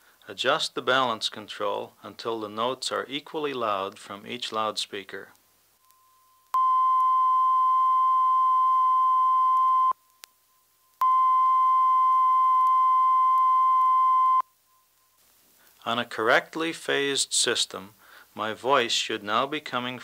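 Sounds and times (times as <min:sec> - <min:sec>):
electronic test tones: 0:05.8 - 0:10.0, 0:11.0 - 0:15.2.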